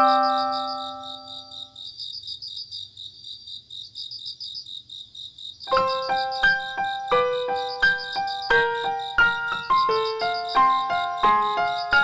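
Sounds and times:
chime: 0.0 - 1.6
light piano-like keyboard tune: 0.0 - 1.8, 5.7 - 12.0
crickets chirping: 0.0 - 12.0.

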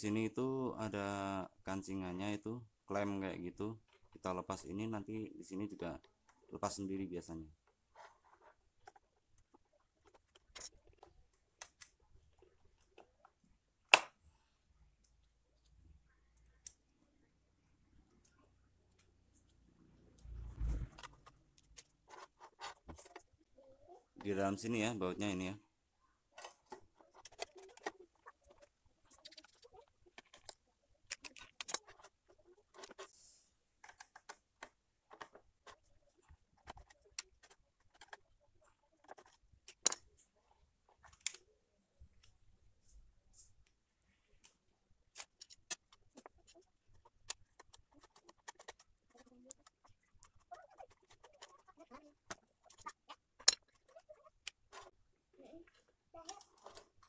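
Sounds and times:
plastic parts clicking and knocking: 7.5 - 14.2, 20.9 - 25.5, 26.3 - 33.2, 33.8 - 41.5, 44.4 - 57.0.

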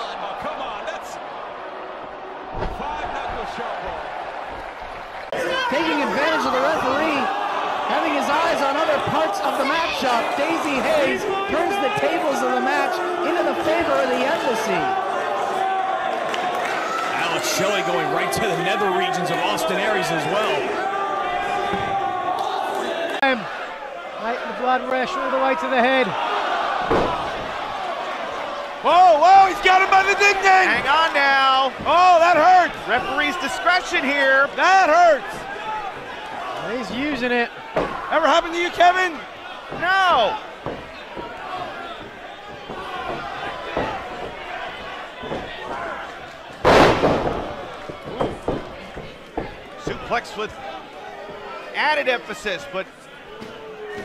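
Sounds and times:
crowd chanting: 17.9 - 50.0.

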